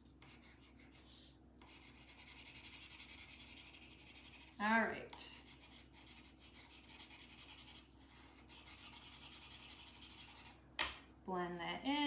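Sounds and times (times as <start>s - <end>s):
chalk scratching on paper: 0.2s - 10.6s.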